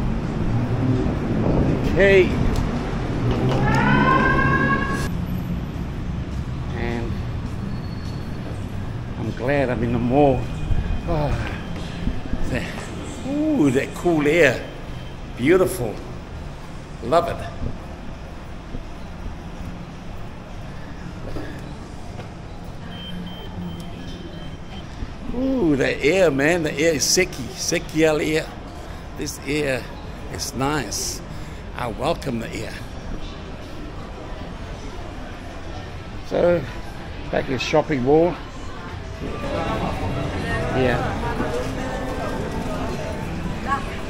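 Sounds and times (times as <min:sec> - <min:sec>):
traffic hum: 0:00.0 - 0:44.0
passers-by talking: 0:06.4 - 0:44.0.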